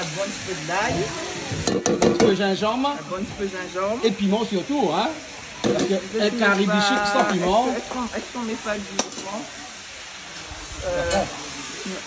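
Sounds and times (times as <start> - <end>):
onions sizzling in a pot: 0.0 - 12.0.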